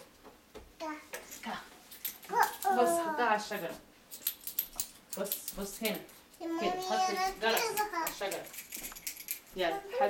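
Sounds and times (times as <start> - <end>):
young child babbling: 2.3 - 3.2.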